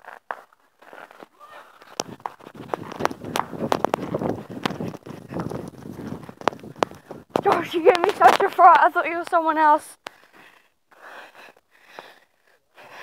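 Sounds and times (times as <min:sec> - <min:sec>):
fireworks cracking and popping: 0:01.8 - 0:08.8
background voices: 0:05.1 - 0:10.0.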